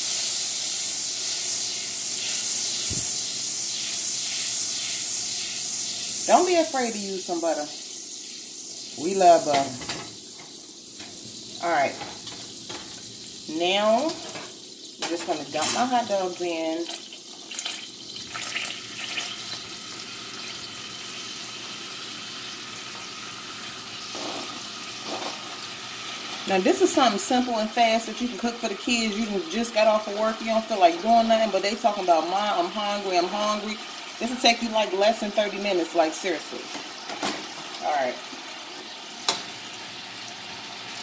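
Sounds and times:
butter sizzling in saucepan: 0.0 - 41.0.

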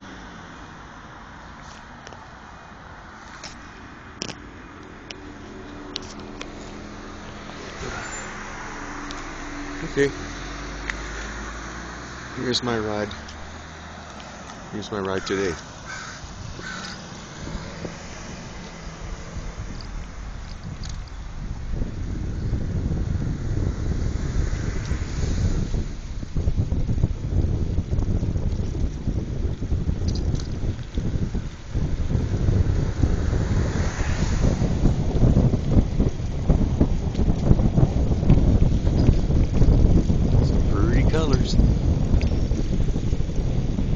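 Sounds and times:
rumble of riding on pavement: 0.0 - 43.9
wind rushing over microphone: 0.0 - 43.9.

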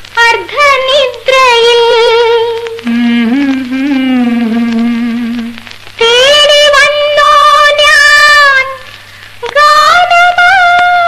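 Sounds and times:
woman singing film song: 0.0 - 11.0.

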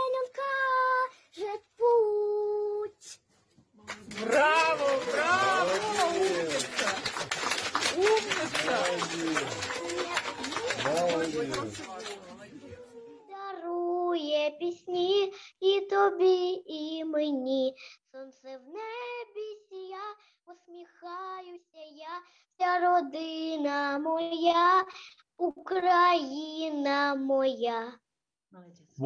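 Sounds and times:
girl singing with vibrato: 0.0 - 3.2, 12.8 - 28.0.

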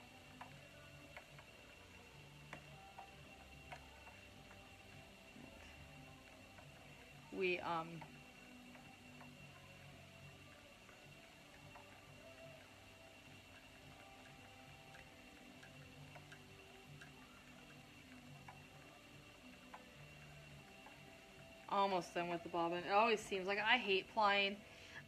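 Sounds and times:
faint irregular ticks: 0.0 - 25.0
faint steady hum: 0.0 - 25.0.

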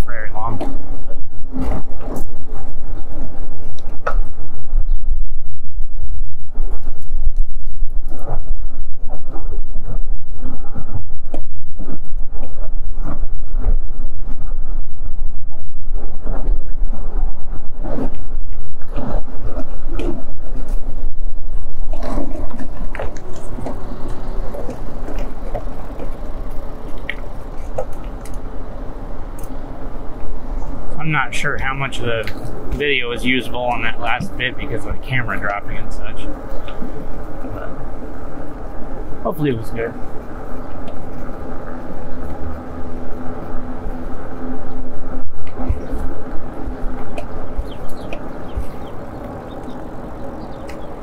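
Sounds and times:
wind rumble on microphone: 0.0 - 51.0.

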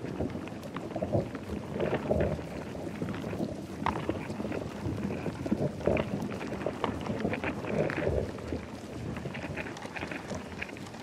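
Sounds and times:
rumbling crackling noise: 0.0 - 11.0.

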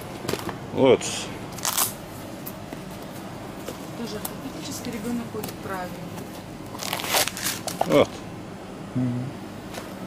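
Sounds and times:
low background hum: 0.0 - 10.0
shoe handling clicks and rustles: 6.2 - 8.1.

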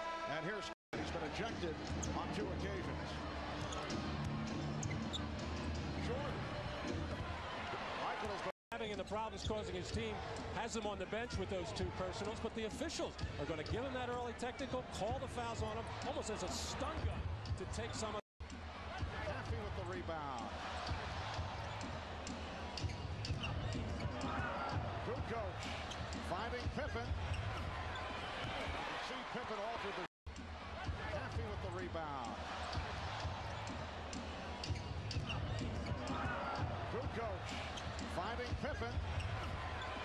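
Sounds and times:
sneaker squeaks: 4.6 - 5.4, 22.8 - 24.2, 34.6 - 36.2.

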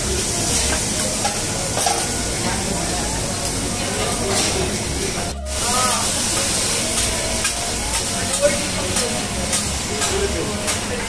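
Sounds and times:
seafood sizzling on a griddle: 0.0 - 11.0.

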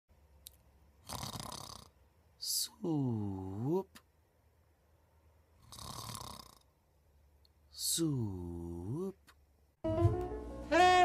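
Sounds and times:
man snoring: 1.0 - 2.0, 5.6 - 6.7.

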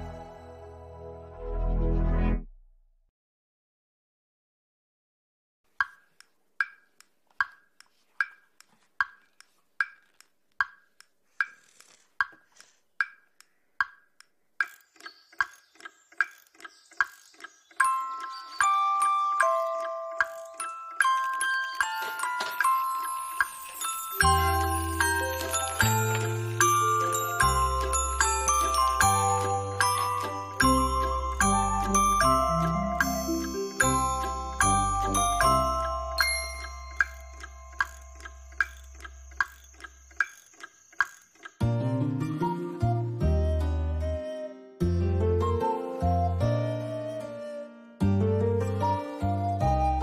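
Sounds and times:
clock ticking: 5.7 - 41.7
bright ringing chime notes: 20.7 - 41.2.

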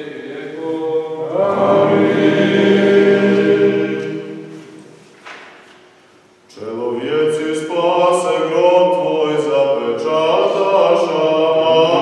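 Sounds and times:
men singing liturgical chant: 0.0 - 4.5, 6.5 - 12.0.

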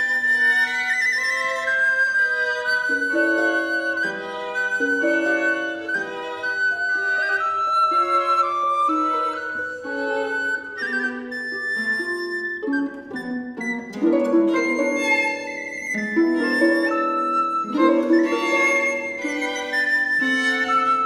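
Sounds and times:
bowed violin: 0.0 - 21.0
recorder melody: 0.0 - 21.0
plucked harp: 2.3 - 21.0.

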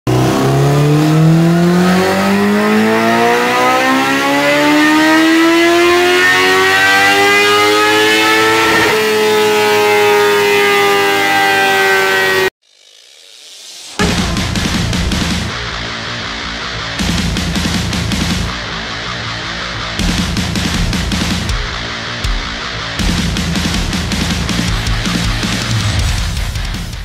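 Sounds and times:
motorcycle engine revving: 0.1 - 26.8.

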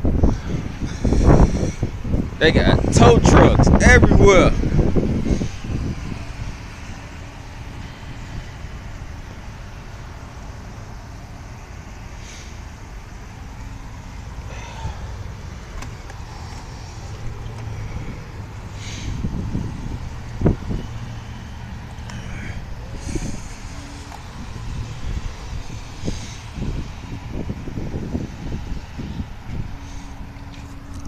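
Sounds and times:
vehicle engines rumbling: 0.0 - 31.0.

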